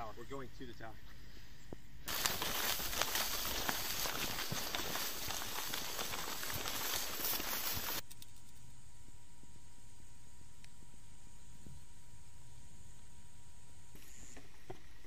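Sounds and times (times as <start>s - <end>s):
faint background hiss: 0.0s - 15.0s
footsteps through brush and grass: 2.1s - 8.0s.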